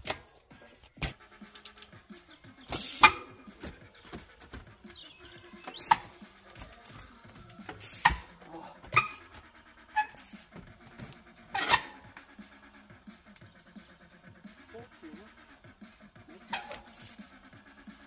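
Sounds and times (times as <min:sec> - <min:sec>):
bicycle scuffs and rattles: 0:00.0 - 0:12.3, 0:16.3 - 0:17.8
bicycle tyres knocking on logs: 0:02.7 - 0:09.5, 0:10.1 - 0:11.2.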